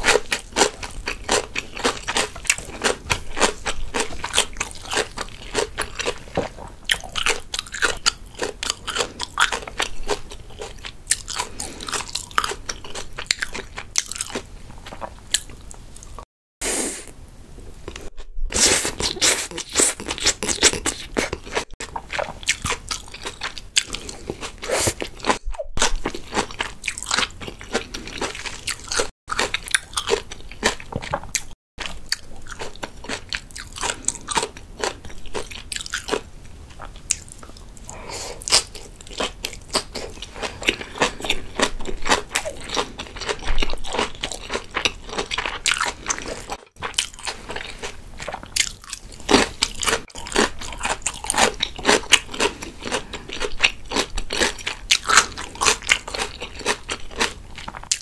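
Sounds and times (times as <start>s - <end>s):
chewing sushi: 0.0s - 16.3s, 17.8s - 58.0s.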